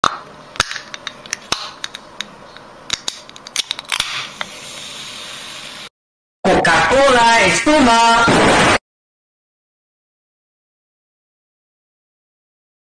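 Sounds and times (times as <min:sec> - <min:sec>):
can pull tab clicking: 0:00.6 - 0:02.3
can opening hiss and fizz: 0:02.9 - 0:05.9.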